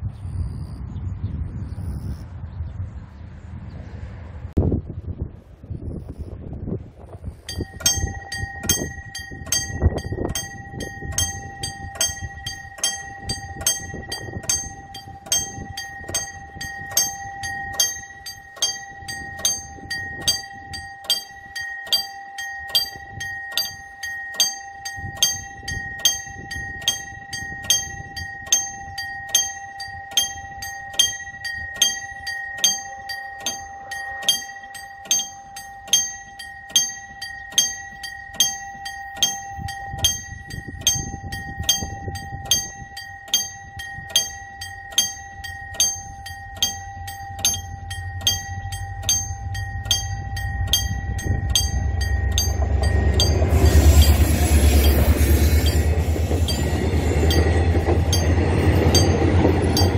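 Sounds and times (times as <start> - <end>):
diesel locomotive rumble: 0.0 - 59.9
level crossing bell ringing: 7.4 - 59.9.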